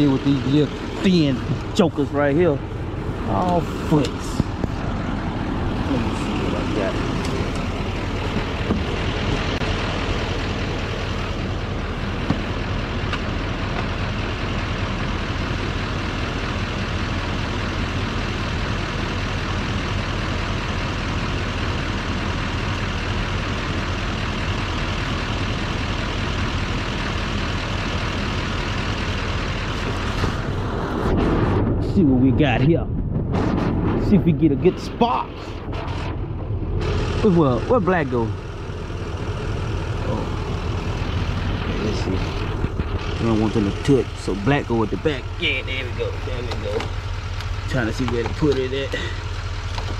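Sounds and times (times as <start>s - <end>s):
diesel truck engine idling: 0.0s - 49.9s.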